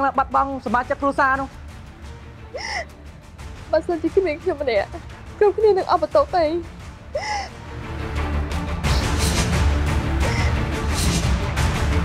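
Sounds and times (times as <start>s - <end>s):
low background music: 0.0s - 12.0s
sobbing gasp: 2.6s - 2.9s, 7.2s - 7.6s, 10.2s - 10.7s
woman crying: 2.6s - 3.0s, 7.2s - 7.6s.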